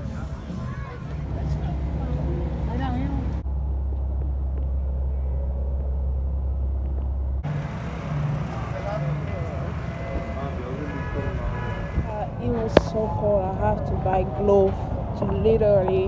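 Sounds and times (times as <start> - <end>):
faint voices: 0.0 - 3.4, 7.4 - 16.0
steady low rumble: 0.0 - 16.0.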